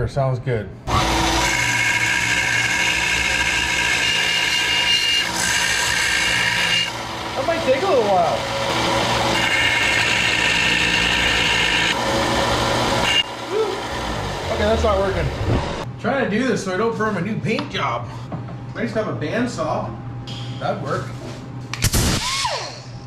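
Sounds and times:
bandsaw cutting metal: 0.9s - 15.8s.

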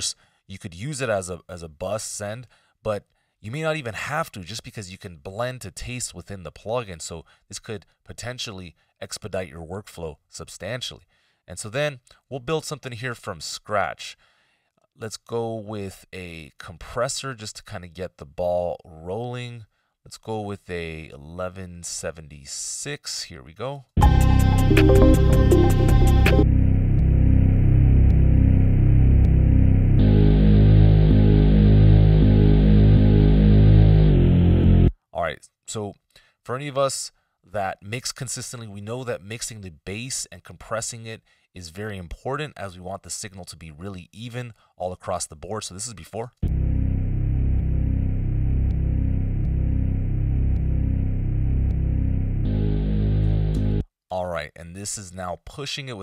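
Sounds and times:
bass line: 24.0s - 34.9s, 46.4s - 53.8s.

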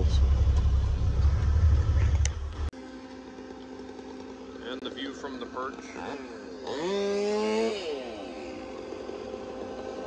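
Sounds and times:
diesel engine idling: 0.0s - 7.3s.

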